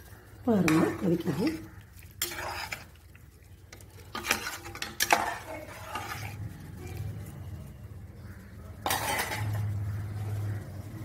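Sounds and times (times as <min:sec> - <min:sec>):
metal ladle scraping a pot: 0:00.6 - 0:07.3, 0:08.7 - 0:10.6.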